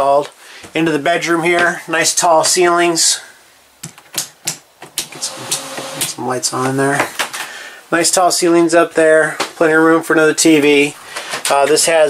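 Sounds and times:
low hiss: 4.7 - 12.0.

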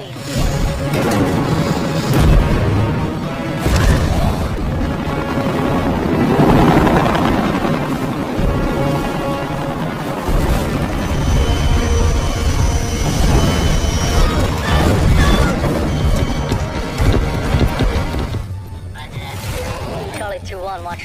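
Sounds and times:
dramatic music: 0.0 - 21.0
helicopter rotors and engines: 0.0 - 21.0.

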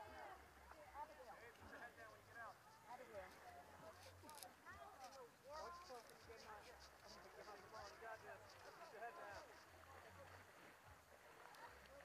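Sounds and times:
distant crowd talking and calling: 0.0 - 12.0.

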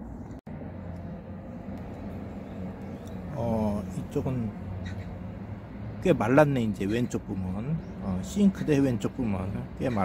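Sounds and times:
low rumble of outdoor background: 0.0 - 10.0.

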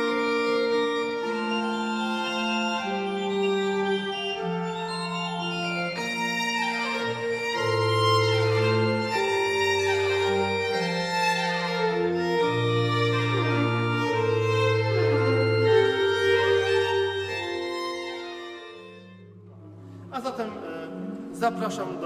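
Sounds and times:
organ-like held bass notes: 0.0 - 19.8
baroque violin: 0.0 - 22.0.

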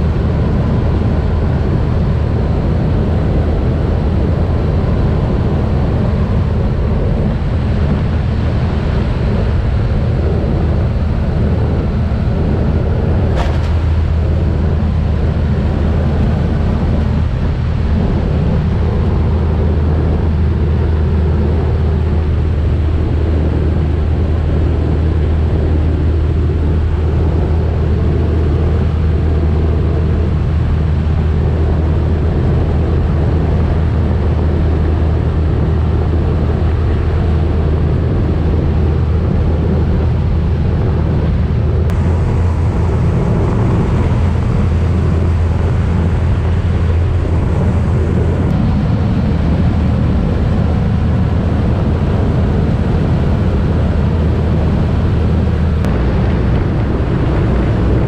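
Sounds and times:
turboprop plane drone: 0.0 - 58.0
wind buffeting microphone: 0.0 - 58.0.

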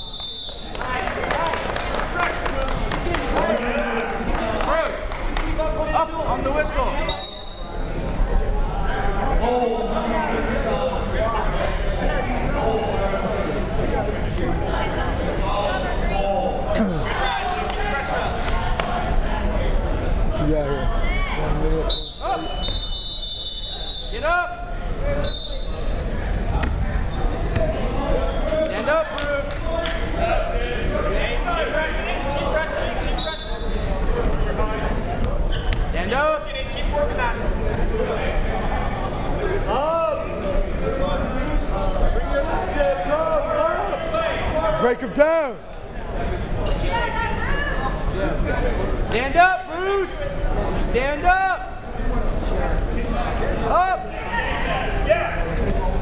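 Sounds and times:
crowd chatter: 0.0 - 56.0.

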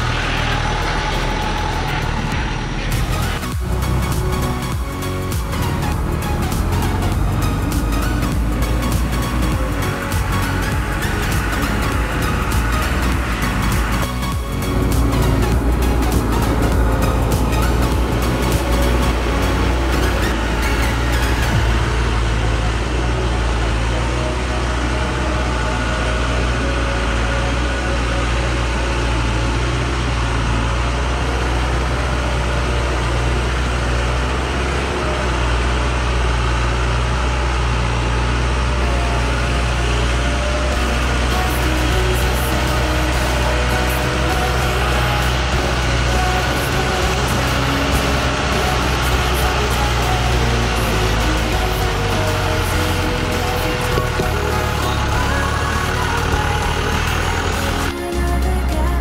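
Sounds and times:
background music: 0.0 - 59.0
diesel truck engine running: 0.0 - 59.0.

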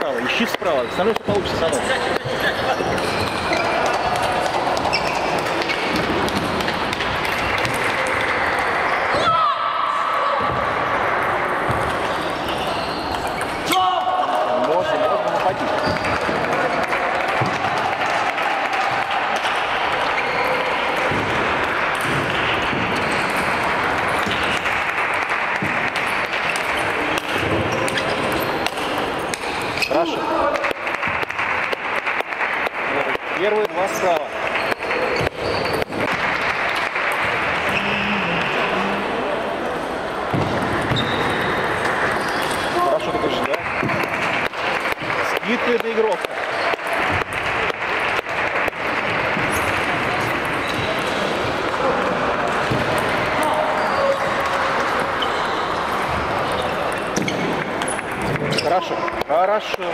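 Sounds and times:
murmur of voices: 0.0 - 59.9.

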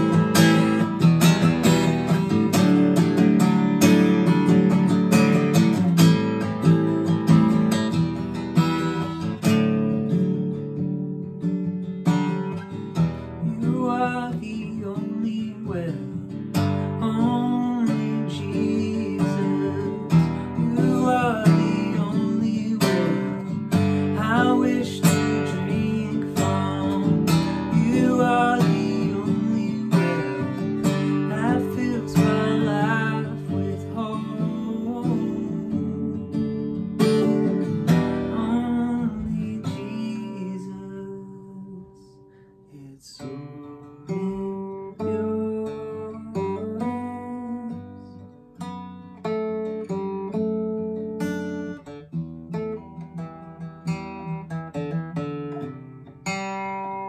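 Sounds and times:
man singing: 0.0 - 2.6, 12.1 - 48.3
acoustic guitar strumming: 0.0 - 57.0.

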